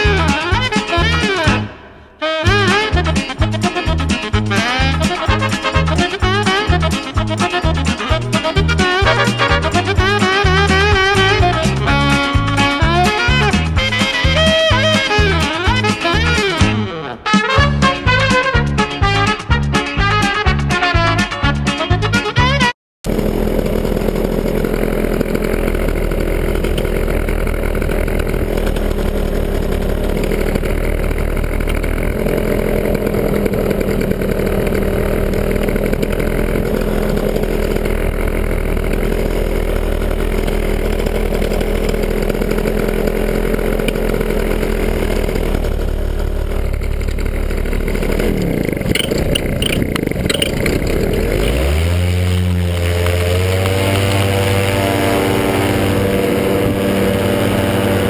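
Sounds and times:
two-stroke paramotor engine running: 0.0 - 20.3, 23.0 - 58.0.

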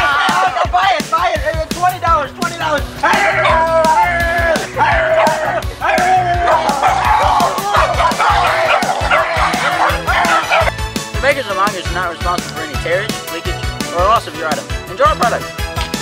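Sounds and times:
background music: 0.0 - 16.0
small dog barking and yipping: 5.1 - 10.7.

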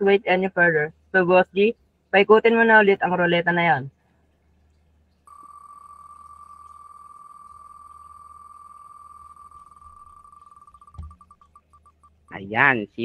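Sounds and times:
spinning wheel ticking: 5.3 - 12.4.

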